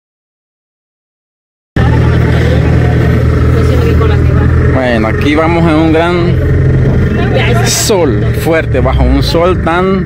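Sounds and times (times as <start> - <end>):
truck engine and road rumble: 1.8 - 10.0.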